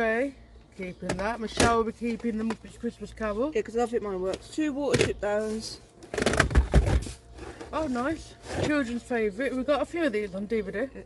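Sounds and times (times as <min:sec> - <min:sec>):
tape cases rustling and bumping: 0:01.0 - 0:02.9, 0:04.3 - 0:09.2.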